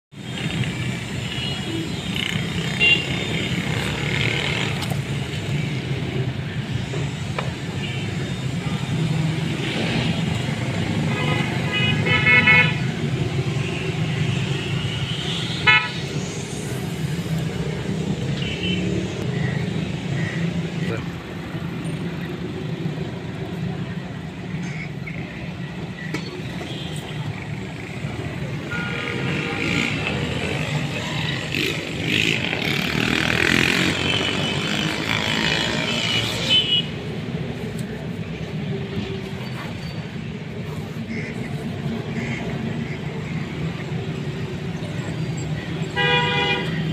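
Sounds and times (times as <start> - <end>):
street traffic: 0.0 - 46.9
vehicle horns honking: 1.2 - 3.6, 11.0 - 12.9, 13.9 - 16.1, 45.9 - 46.9.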